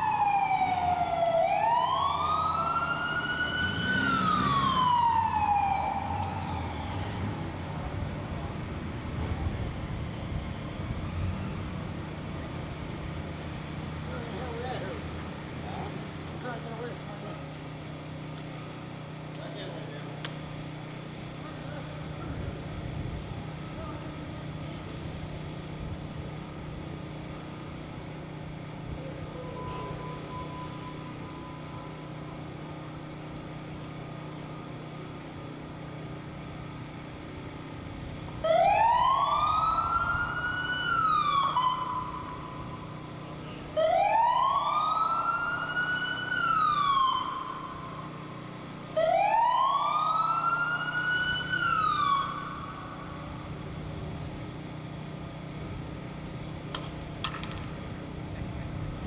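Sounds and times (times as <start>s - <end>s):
siren wailing: 0.0s - 8.4s, 28.9s - 33.3s, 38.4s - 53.6s.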